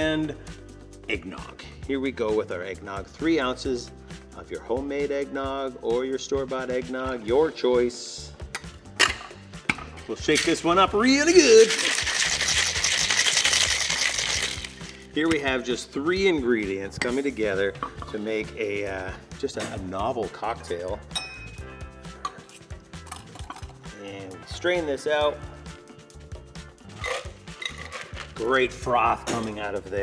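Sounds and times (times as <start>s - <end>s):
background music: 0.0s - 30.0s
ice rattling in cocktail shaker: 10.2s - 15.1s, 27.0s - 28.5s.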